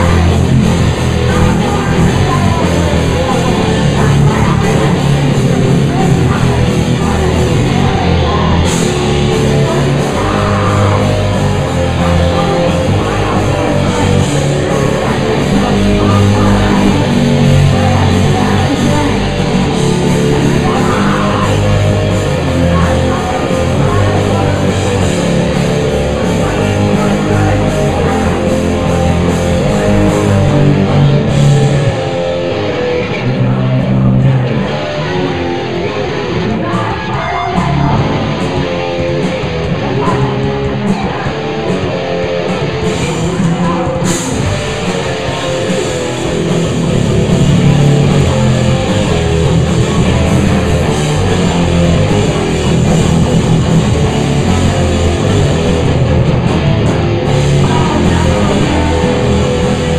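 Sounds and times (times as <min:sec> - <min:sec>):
live rock band playing loud: 0:00.0 - 0:59.9.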